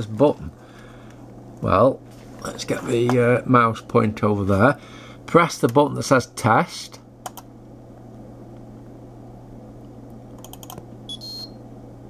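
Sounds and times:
low electrical hum: 0:00.0 - 0:12.0
short high-pitched beep: 0:11.1 - 0:11.6.

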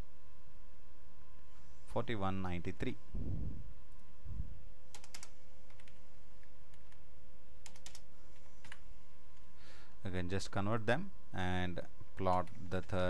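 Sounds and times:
faint electrical hum: 0:00.0 - 0:13.0
keyboard typing: 0:04.9 - 0:06.0, 0:06.7 - 0:07.0, 0:07.6 - 0:08.8.

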